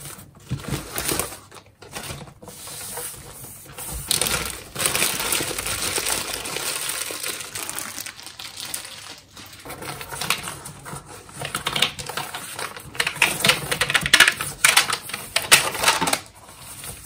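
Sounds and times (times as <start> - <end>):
plastic bag rustling and crinkling: 0.0 - 17.0.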